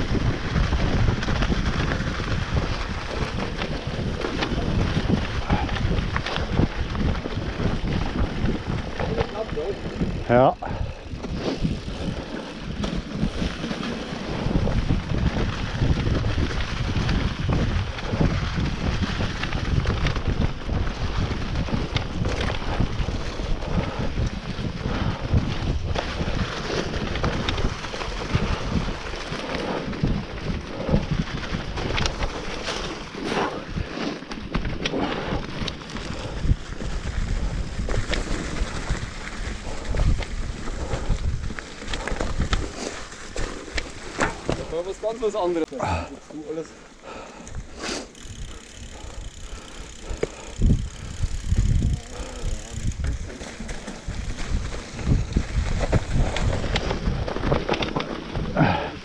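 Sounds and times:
wind rushing over microphone: 0.0s - 45.2s, 47.2s - 59.0s
bike rattling over bumps: 0.0s - 59.0s
tyre noise on dirt: 0.0s - 59.0s.

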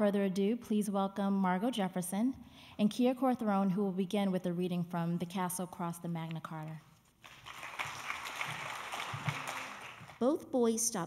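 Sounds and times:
audience applauding: 7.3s - 10.2s.

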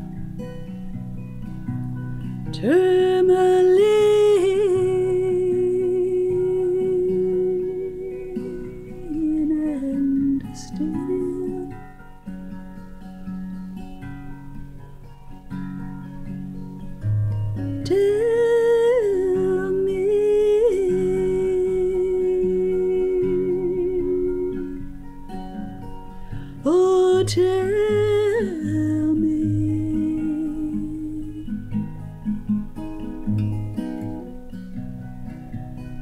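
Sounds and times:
acoustic guitar picking: 0.0s - 36.0s
woman humming: 2.6s - 11.7s, 18.0s - 24.8s
woman singing a long note: 2.6s - 11.8s, 17.9s - 24.8s, 26.6s - 31.5s.

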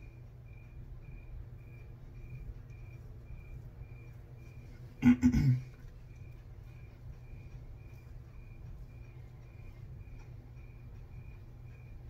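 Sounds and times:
cricket chirping: 0.0s - 12.0s
faint low hum: 0.0s - 12.0s.

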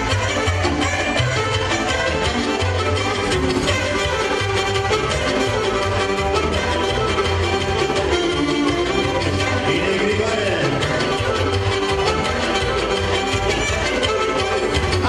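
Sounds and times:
folk dance music by live band: 0.0s - 15.0s.

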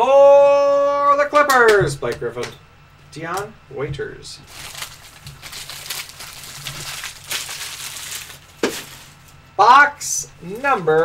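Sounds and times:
plastic packaging crinkling: 4.4s - 9.6s, 10.4s - 11.0s.

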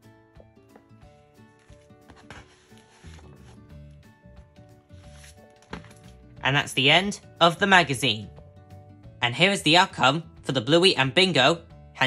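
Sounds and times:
quiet background music: 0.0s - 12.0s
paper and cardboard rustling: 1.4s - 3.7s, 4.9s - 6.1s.

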